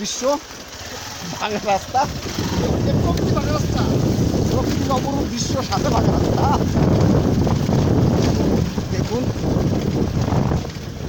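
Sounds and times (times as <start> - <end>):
motorcycle engine rumble: 0.0 - 11.0
wind buffeting microphone: 0.7 - 11.0.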